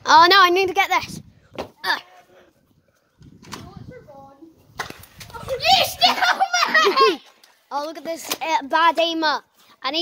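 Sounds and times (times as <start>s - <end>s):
children shouting excitedly: 5.3s - 7.4s.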